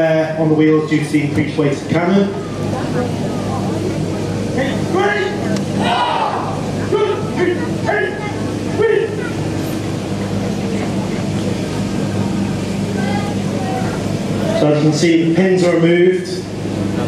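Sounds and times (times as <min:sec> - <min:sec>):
steady low hum: 0:00.0 - 0:17.0
voices calling out: 0:02.0 - 0:15.0.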